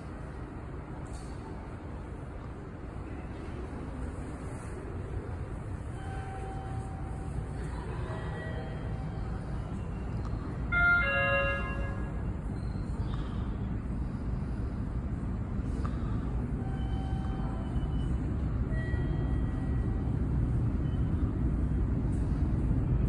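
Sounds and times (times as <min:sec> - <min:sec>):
low rumble of subway train: 0:00.0 - 0:23.0.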